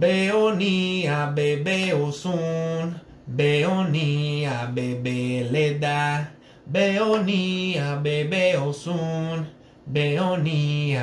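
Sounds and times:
man chanting unaccompanied: 0.0s - 11.0s.

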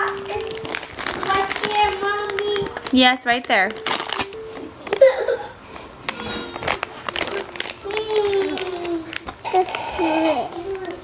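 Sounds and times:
toddlers calling and babbling: 0.0s - 2.8s, 7.2s - 11.0s.

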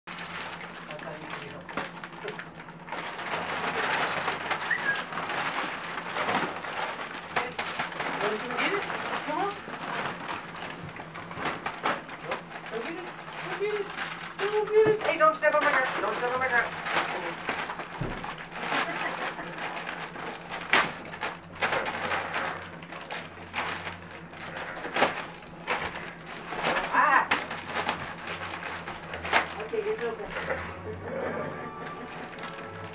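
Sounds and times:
wrapping paper crinkling and tearing: 0.1s - 32.9s.

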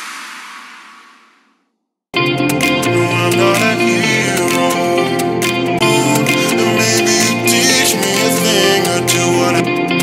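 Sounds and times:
hissing whoosh effect: 0.0s - 1.6s.

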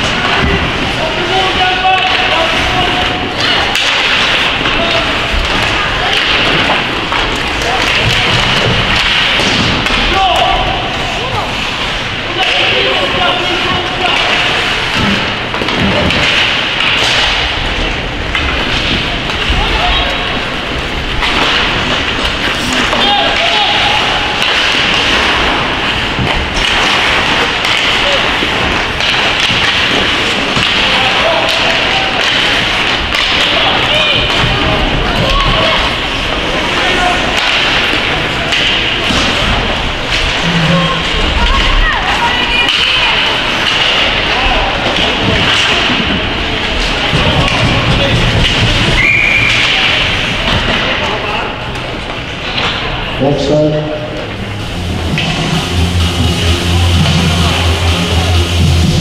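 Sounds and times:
voices shouting: 22.7s - 25.7s, 27.4s - 39.7s.

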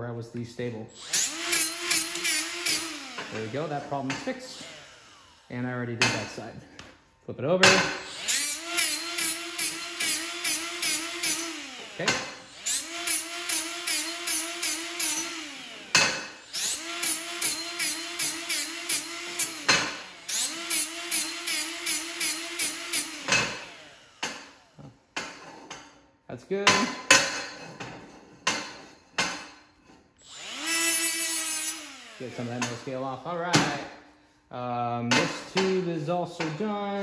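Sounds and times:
die grinder grinding steel: 0.9s - 5.9s, 7.9s - 24.9s, 30.2s - 33.4s.

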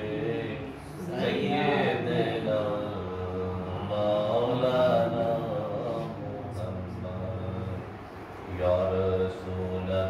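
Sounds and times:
man chanting into microphone: 0.0s - 10.0s.

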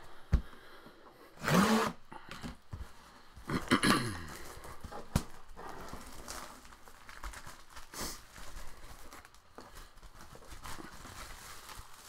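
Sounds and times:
shrink wrap tearing and crinkling: 4.4s - 12.0s.

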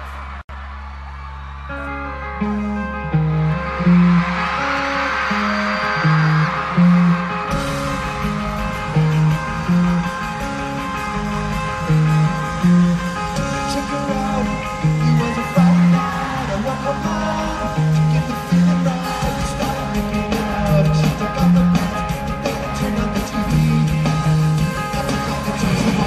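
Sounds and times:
punk rock band playing: 1.6s - 26.0s
electric guitar riff: 1.7s - 26.0s.

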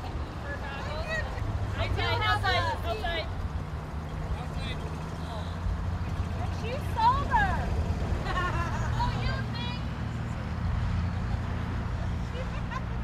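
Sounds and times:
golf cart humming: 0.0s - 13.0s
voices talking: 0.0s - 13.0s.

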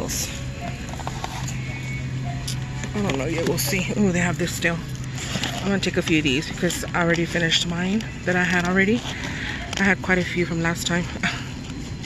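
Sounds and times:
faint background music: 0.0s - 12.0s
steady low hum: 0.0s - 12.0s.

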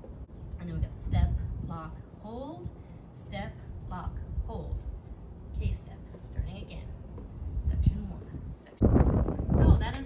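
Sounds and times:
low outdoor background noise: 0.0s - 10.0s.

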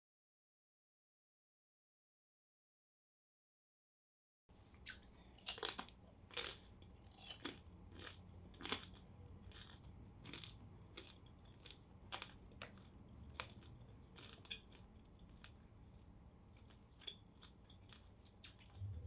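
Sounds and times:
person chewing crunchy food: 4.8s - 19.0s.

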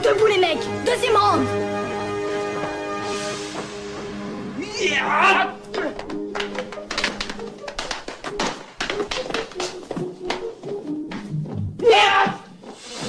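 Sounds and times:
film soundtrack music: 0.0s - 13.0s.

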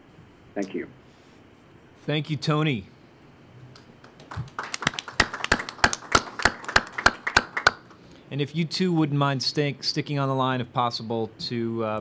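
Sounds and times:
audience applauding: 3.7s - 8.0s
hand claps: 3.7s - 8.0s.

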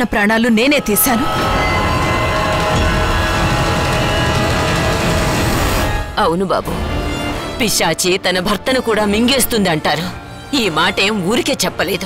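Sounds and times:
tense dramatic music: 0.0s - 12.0s.

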